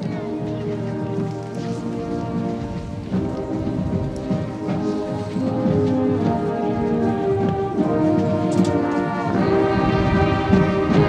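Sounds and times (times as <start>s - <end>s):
percussion rumble: 0.0s - 11.0s
wind instruments holding chords: 0.0s - 11.0s.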